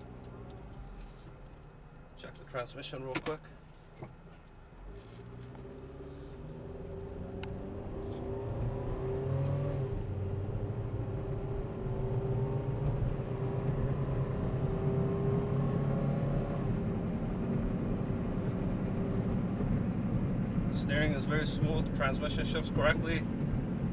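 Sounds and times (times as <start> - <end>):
road noise: 0.0 - 23.9
car engine accelerating: 4.0 - 23.9.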